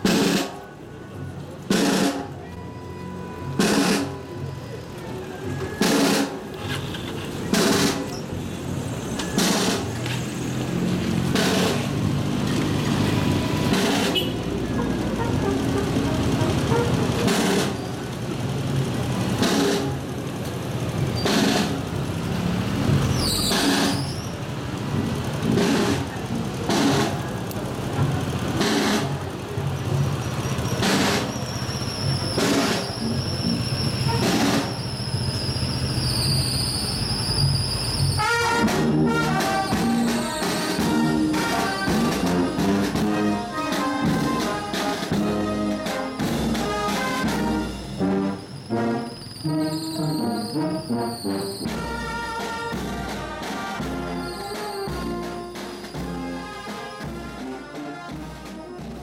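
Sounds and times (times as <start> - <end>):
brass band playing slow march: 0.0 - 0.6, 1.6 - 4.2, 5.7 - 8.1, 9.4 - 9.9, 10.8 - 12.0, 13.2 - 17.8, 19.3 - 20.0, 21.2 - 21.8, 22.9 - 24.0, 25.4 - 27.2, 28.5 - 29.2, 30.8 - 31.3, 32.1 - 34.8, 38.0 - 59.0.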